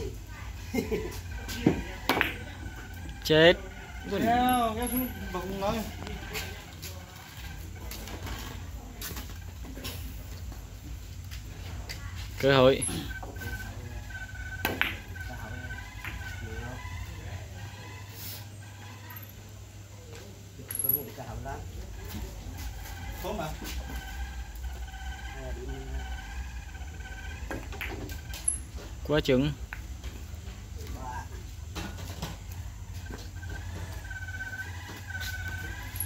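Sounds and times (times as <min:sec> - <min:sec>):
billiard balls clicking: 0:01.8 - 0:03.3, 0:13.1 - 0:16.4, 0:25.9 - 0:28.7
billiard balls clicking together: 0:14.4 - 0:16.4.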